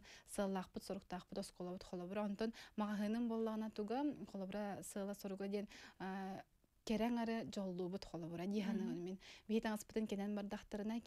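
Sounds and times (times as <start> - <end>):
woman speaking: 0.3 - 11.0.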